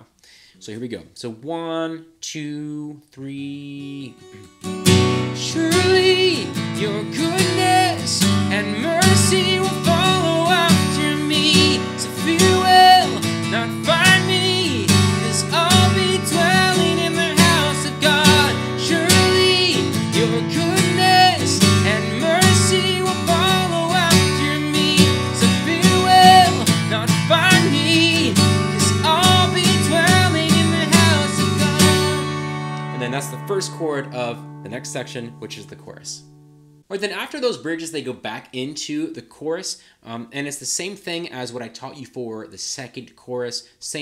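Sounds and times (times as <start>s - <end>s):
man singing: 1.4s - 4.2s, 5.3s - 36.2s
acoustic guitar strumming: 4.1s - 36.9s.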